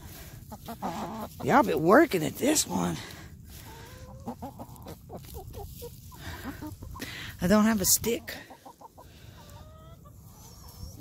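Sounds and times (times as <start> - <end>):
hens clucking: 0.0 - 11.0.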